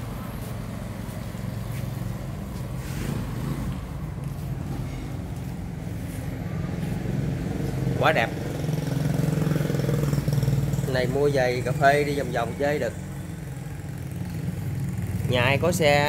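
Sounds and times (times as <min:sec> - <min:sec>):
two-stroke motorcycle idling: 0:07.7 - 0:16.0.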